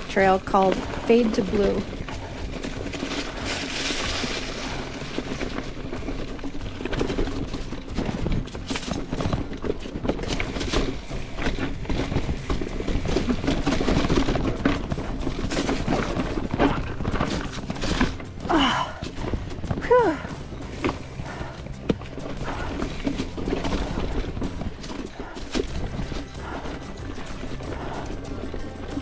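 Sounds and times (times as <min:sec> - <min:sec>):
bike clattering over rock: 0:00.0 - 0:29.0.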